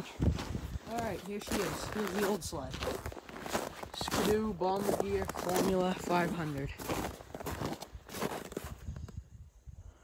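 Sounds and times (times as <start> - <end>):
footsteps in snow: 0.0 - 9.2.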